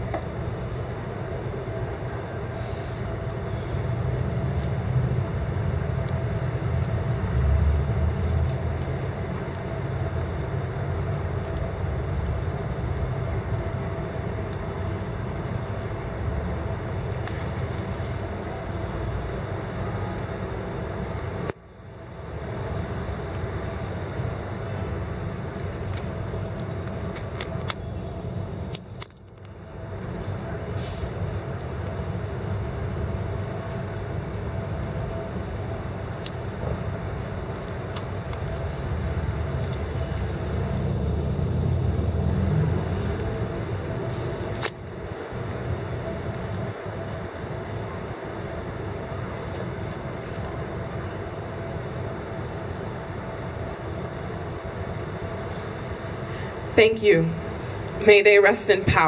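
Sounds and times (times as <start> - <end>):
city hum: 0.0 - 59.0
traffic rumble: 0.0 - 59.0.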